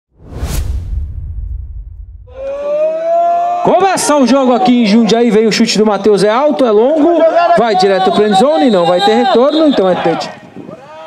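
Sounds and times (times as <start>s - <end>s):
deep low rumble: 0.1s - 2.4s
whoosh to sharp hit: 0.1s - 2.4s.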